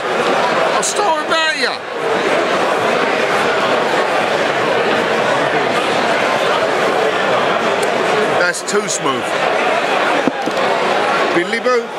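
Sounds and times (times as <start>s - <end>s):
crowd babble: 0.0s - 11.9s.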